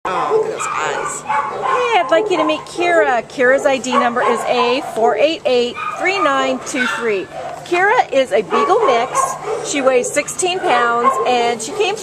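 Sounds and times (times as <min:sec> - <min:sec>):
dog whining and yipping: 0:00.2 - 0:02.8, 0:05.8 - 0:07.6, 0:08.6 - 0:12.0.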